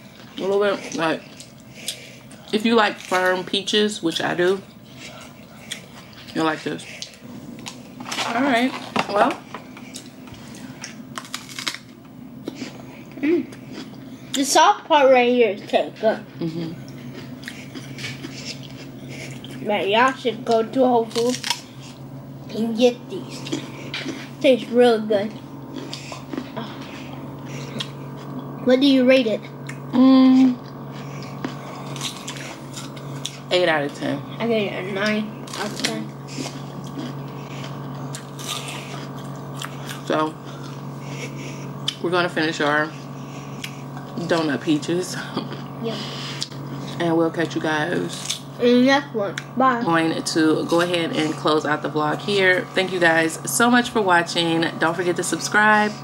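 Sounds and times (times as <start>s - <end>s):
biting and chewing crunchy fruit: 0.0s - 14.6s, 15.5s - 50.0s.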